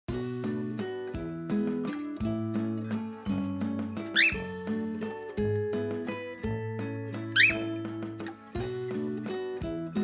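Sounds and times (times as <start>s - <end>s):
background music melodic notes: 0.1s - 10.0s
cockatiel chirps: 4.1s - 4.6s, 7.4s - 7.8s.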